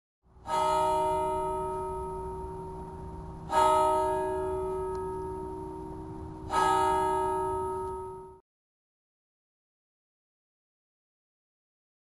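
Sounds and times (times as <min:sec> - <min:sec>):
bell tolling: 0:00.4 - 0:08.4.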